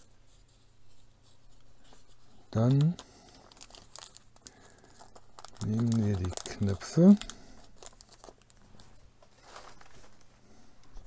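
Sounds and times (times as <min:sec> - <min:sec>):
plastic bag crinkling: 0:02.5 - 0:10.4.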